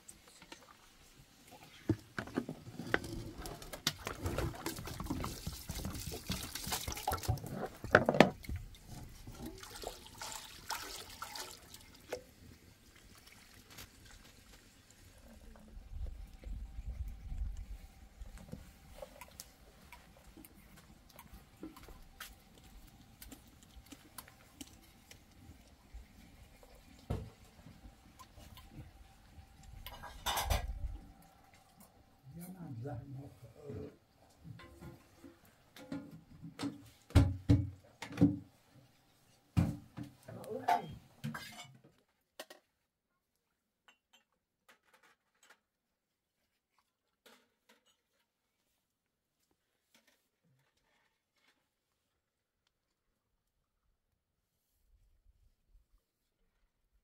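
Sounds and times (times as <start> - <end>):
water sloshing in a bowl: 1.7 - 17.4
knock: 37.1 - 38.4.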